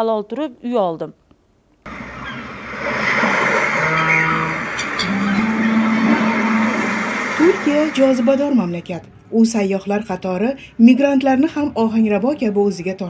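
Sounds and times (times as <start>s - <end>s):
voices: 1.9s - 9.1s
traffic: 1.9s - 9.4s.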